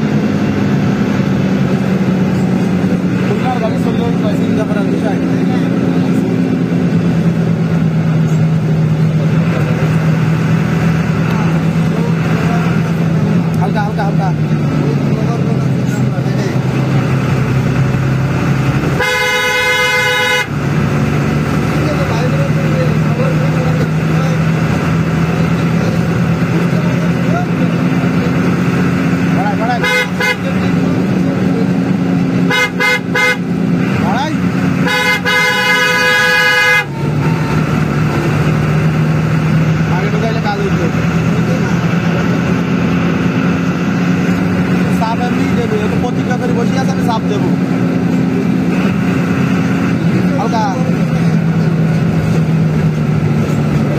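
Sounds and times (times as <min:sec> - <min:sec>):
bus engine droning: 0:00.0 - 0:53.9
bus horn short toots: 0:18.9 - 0:20.5, 0:29.8 - 0:30.6, 0:32.5 - 0:33.5, 0:34.8 - 0:37.3
bus horn blasts: 0:18.9 - 0:20.6, 0:29.7 - 0:30.8, 0:32.4 - 0:33.7, 0:34.7 - 0:37.8.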